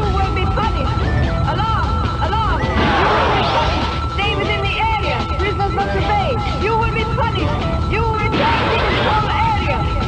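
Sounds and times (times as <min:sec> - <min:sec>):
held high electronic tone: 0:00.0 - 0:10.0.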